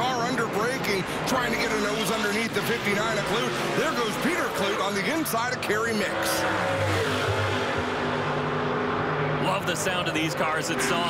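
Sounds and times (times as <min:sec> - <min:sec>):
race car engines at speed: 0:00.0 - 0:11.0.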